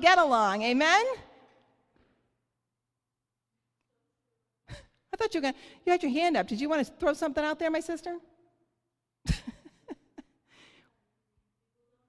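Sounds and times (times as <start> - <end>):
woman's amplified voice: 0.0 - 1.3
woman breathing: 5.6 - 5.9, 10.4 - 11.0.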